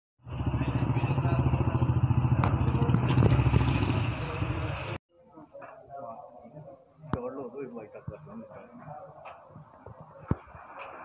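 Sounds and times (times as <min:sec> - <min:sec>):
motorcycle engine idling: 0:00.2 - 0:05.0.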